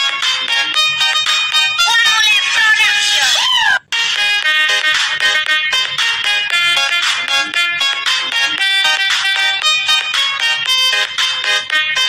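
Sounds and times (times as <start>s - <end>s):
bright quick ringtone-like melody: 0.2s - 2.7s.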